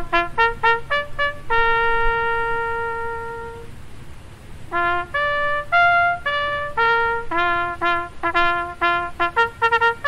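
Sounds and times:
trumpet long note: 0.0 - 3.8, 4.7 - 10.0.

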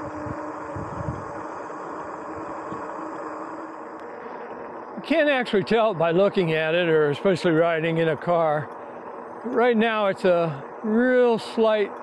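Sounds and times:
wind rushing: 0.0 - 3.0
bike tyre noise on pavement: 0.0 - 12.0.

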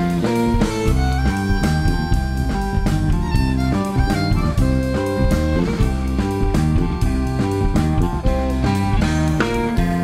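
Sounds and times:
bass guitar: 0.0 - 10.0
drum kit: 0.0 - 10.0
electric guitar: 0.0 - 10.0
violin: 0.0 - 10.0.

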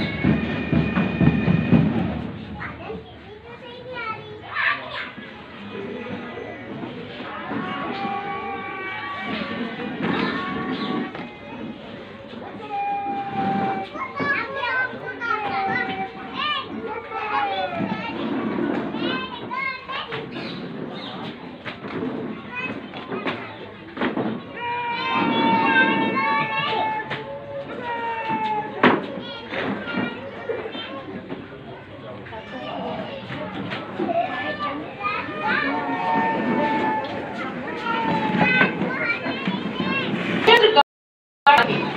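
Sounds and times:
background hubbub of spectators: 0.0 - 40.8, 41.5 - 41.9
children calling and chattering: 0.0 - 40.8, 41.5 - 41.9.

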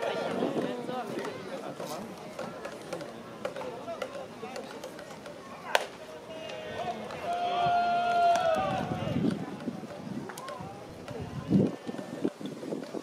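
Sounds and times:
ballpark crowd murmur: 0.0 - 13.0
baseball crack at the plate: 5.7 - 6.0
spectator shouting: 6.6 - 9.2.

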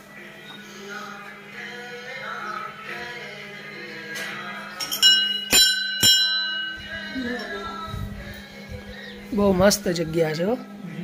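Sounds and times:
temple bell ringing: 4.9 - 7.6.

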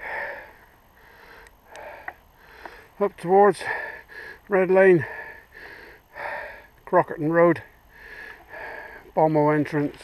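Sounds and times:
heavy hissy breathing: 0.0 - 9.7.

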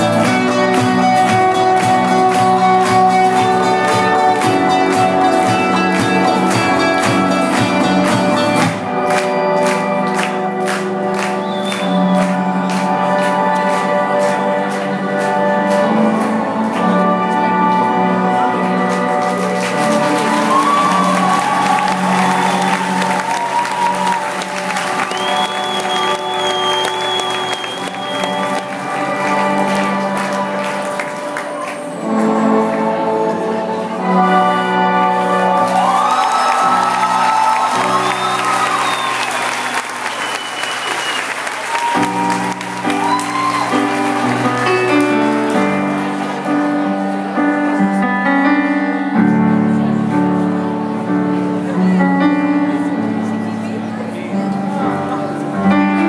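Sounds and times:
audience applauding and cheering: 0.0 - 33.0, 34.1 - 48.0
live rock band playing chords: 0.0 - 56.0.

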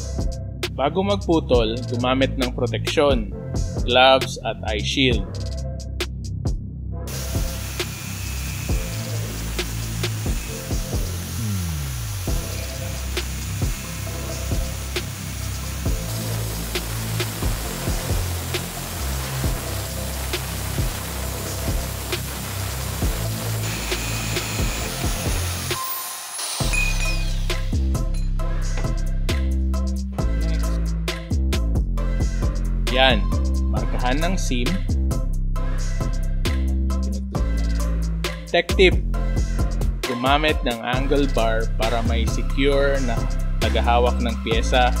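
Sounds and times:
background music: 0.0 - 45.0
angle grinder cutting steel pipe: 7.1 - 27.7.

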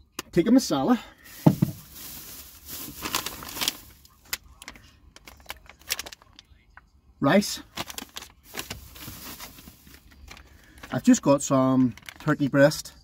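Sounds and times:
food packets rustling: 1.2 - 6.4, 7.6 - 12.4.

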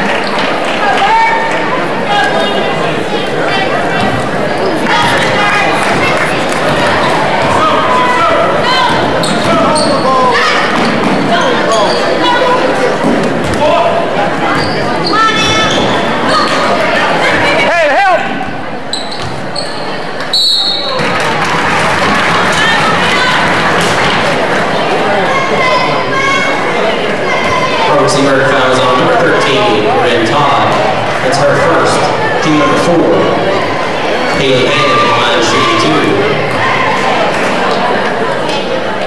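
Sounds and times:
crowd chatter: 0.0 - 39.0.

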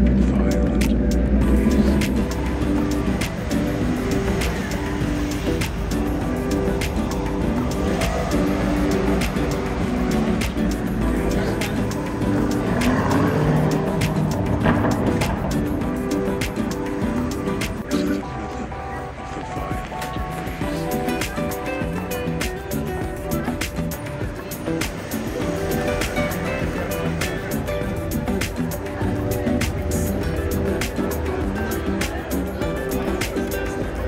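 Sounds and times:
car traffic passing: 0.0 - 34.0
music with held notes: 0.0 - 34.0.

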